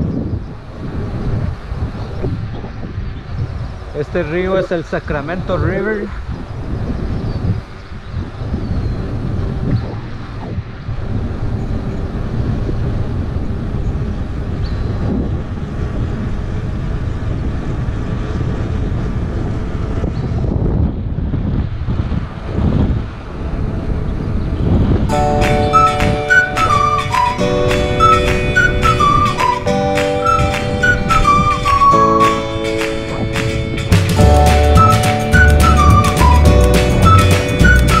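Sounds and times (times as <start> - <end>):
wind buffeting microphone: 0.0 - 38.0
flute music: 25.1 - 38.0.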